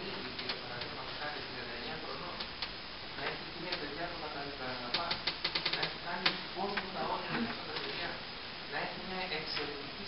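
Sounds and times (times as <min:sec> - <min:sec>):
sharp irregular clicks: 0:00.2 - 0:00.9, 0:04.8 - 0:06.9.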